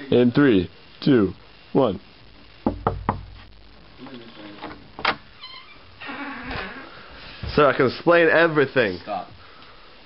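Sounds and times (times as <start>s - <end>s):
knocks on a door: 2.6s - 3.4s.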